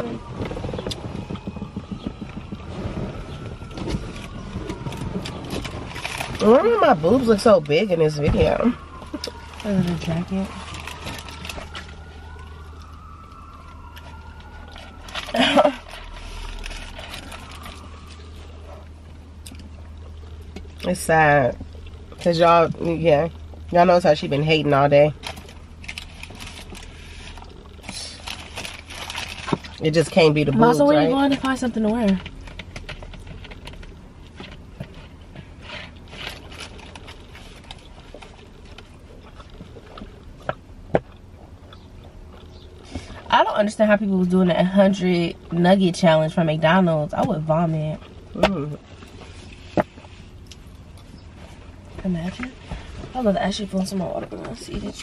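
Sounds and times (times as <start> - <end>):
car cabin rumble: 0.0 - 12.3
faint clicks and rustles: 0.0 - 24.3, 25.0 - 44.8, 47.1 - 55.0
faint siren wailing: 0.0 - 50.4
steady low car hum: 0.0 - 55.0.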